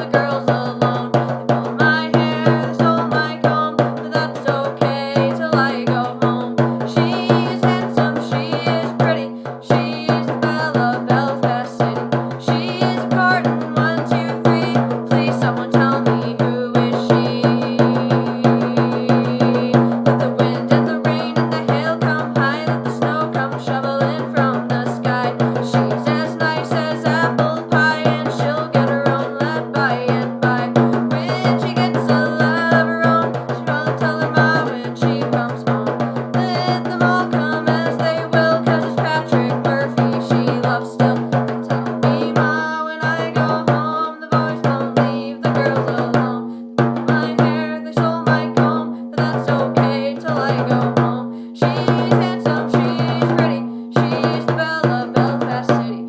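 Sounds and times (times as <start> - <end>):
frame drum rhythm: 0.0 - 56.0.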